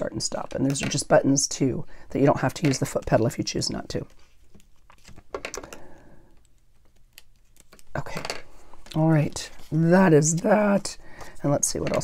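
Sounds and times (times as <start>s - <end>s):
paper rustling: 4.0s - 5.5s, 6.4s - 8.1s.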